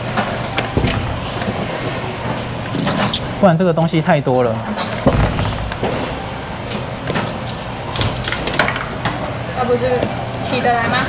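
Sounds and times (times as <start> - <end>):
arcade machines humming: 0.0 - 3.5, 4.2 - 9.6
low thump: 5.0 - 6.2.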